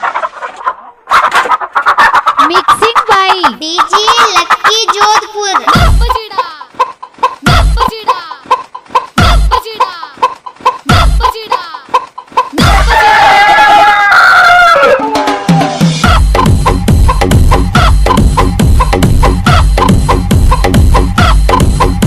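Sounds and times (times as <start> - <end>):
heavy kick-drum beat: 5.7 - 6.3, 7.4 - 7.9, 9.2 - 9.6, 10.8 - 11.4, 12.6 - 13.1, 15.2 - 22.0
rooster crow: 12.6 - 15.8.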